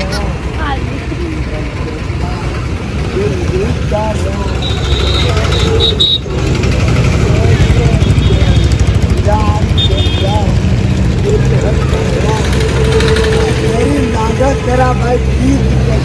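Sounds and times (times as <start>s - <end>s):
people talking: 0.0s - 6.0s, 6.7s - 10.6s, 11.2s - 16.0s
motorcycle and rickshaw engines: 0.0s - 16.0s.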